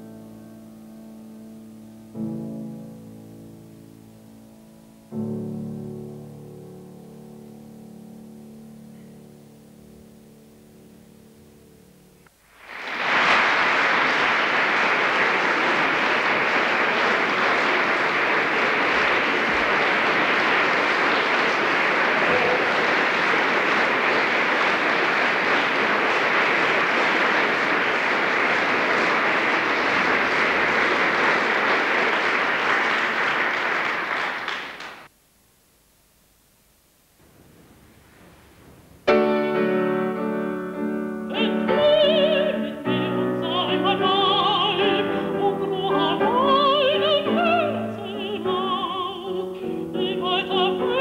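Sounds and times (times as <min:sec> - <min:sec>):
audience applauding: 0:12.4 - 0:35.1.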